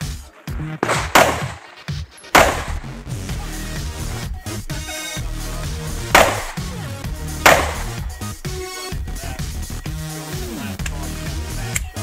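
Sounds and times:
pistol shots: 0:00.8 - 0:01.7, 0:02.4 - 0:03.0, 0:06.1 - 0:06.8, 0:07.4 - 0:08.3.

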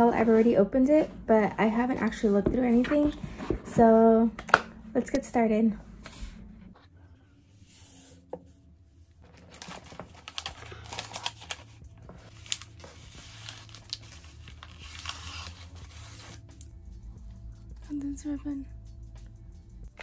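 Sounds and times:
tissue paper crinkling: 0:09.2 - 0:16.3.

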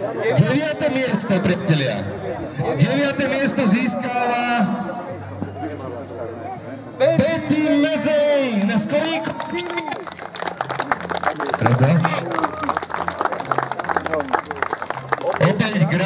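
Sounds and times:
audience applauding: 0:09.1 - 0:16.0.

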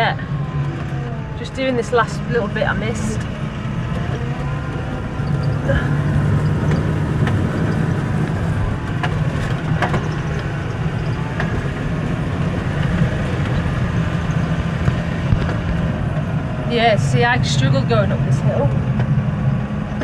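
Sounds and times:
tractor engine running: 0:00.0 - 0:20.0.

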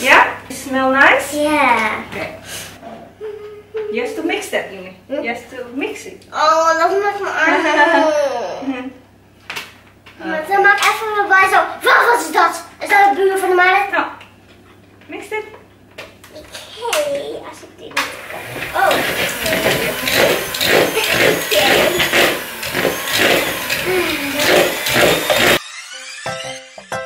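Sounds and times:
electric hand mixer whirring: 0:18.0 - 0:26.9.

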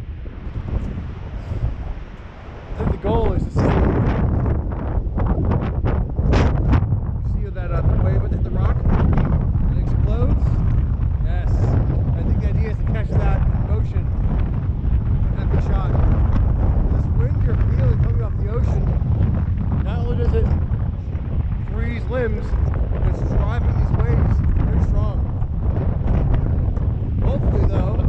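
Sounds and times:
wind buffeting microphone: 0:00.0 - 0:28.0
man talking: 0:02.8 - 0:03.9, 0:07.2 - 0:09.0, 0:09.7 - 0:10.6, 0:11.2 - 0:14.1, 0:15.3 - 0:16.0, 0:16.8 - 0:19.0, 0:19.8 - 0:20.6, 0:21.6 - 0:25.3, 0:27.2 - 0:28.0.

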